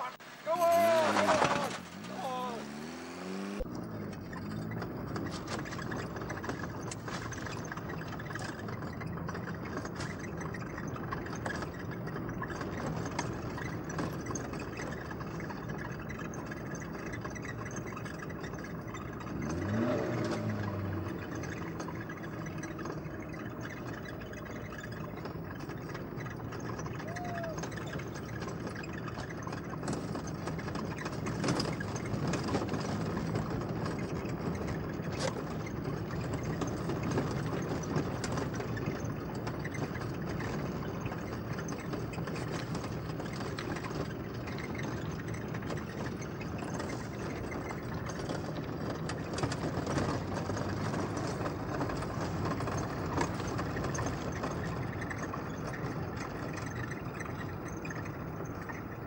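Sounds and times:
car engine and road noise: 0:00.0 - 0:59.0
light clicks and rattles: 0:03.6 - 0:59.0.

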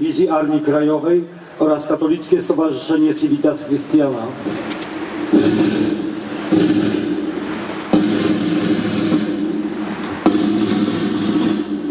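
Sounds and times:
slow ceremonial band music: 0:04.2 - 0:11.9.

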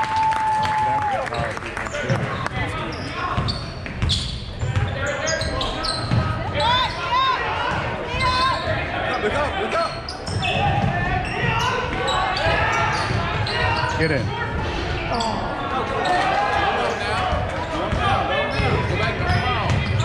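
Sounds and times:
crowd voices echoing: 0:00.0 - 0:20.0
sneakers squeaking: 0:01.9 - 0:20.0.

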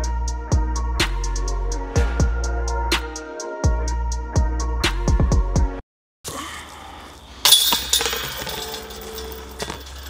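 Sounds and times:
metallic jingle of chains: 0:07.4 - 0:10.0.

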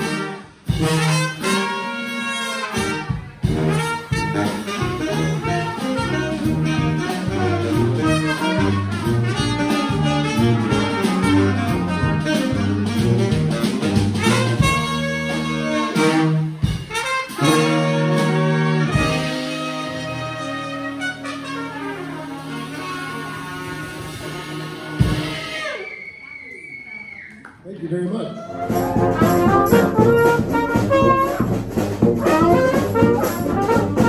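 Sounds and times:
brass band playing: 0:00.0 - 0:26.0, 0:28.5 - 0:34.0
sousaphone bass: 0:28.5 - 0:34.0.

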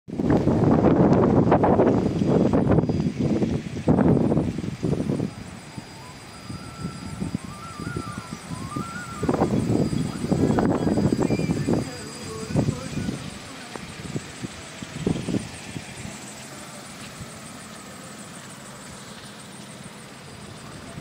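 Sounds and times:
wind buffeting microphone: 0:00.1 - 0:16.4
faint wavering high tone: 0:02.4 - 0:21.0.

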